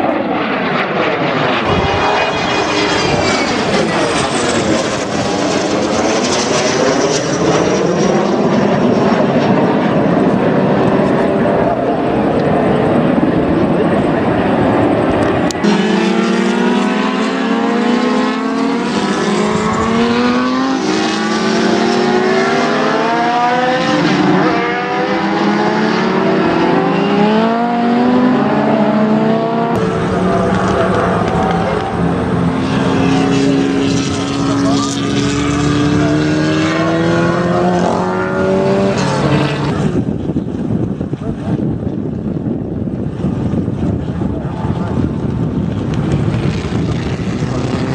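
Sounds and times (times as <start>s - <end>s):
aircraft engines flying overhead: 0.0s - 47.9s.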